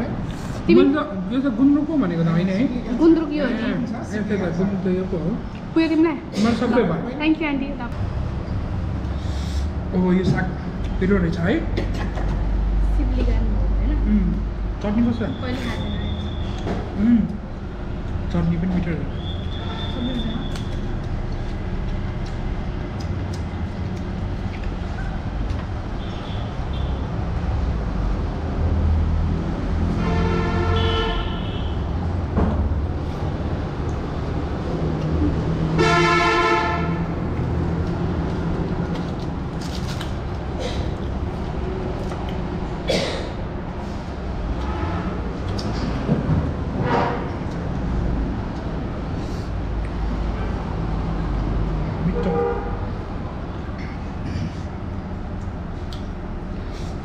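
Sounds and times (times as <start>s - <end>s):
low rumble of engines: 0.0s - 57.0s
vehicle horn blasts: 19.2s - 20.5s, 30.0s - 31.9s, 35.8s - 37.1s, 52.1s - 52.8s.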